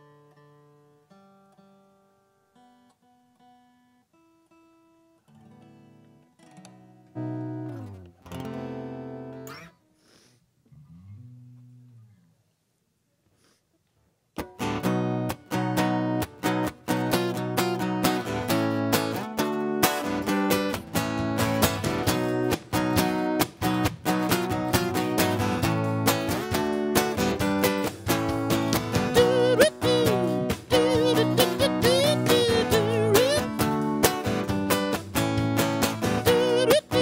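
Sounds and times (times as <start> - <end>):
strummed acoustic guitar: 0.0 - 9.8, 14.4 - 37.0
drums: 19.9 - 37.0
electric bass: 20.1 - 37.0.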